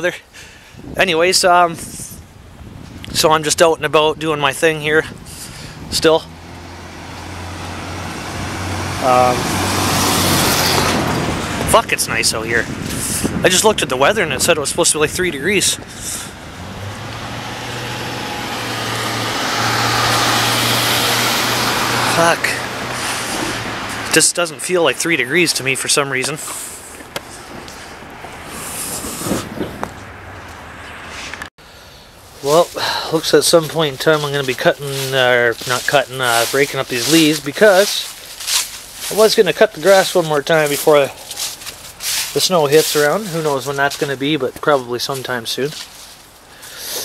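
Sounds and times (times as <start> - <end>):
street noise hiss: 0.0 - 47.0
passing vehicle engine and tyres: 4.7 - 47.0.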